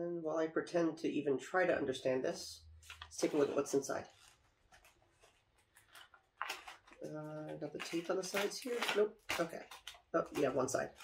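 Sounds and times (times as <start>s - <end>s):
plastic package crinkling: 2.8s - 11.0s
plastic rustle: 2.8s - 11.0s.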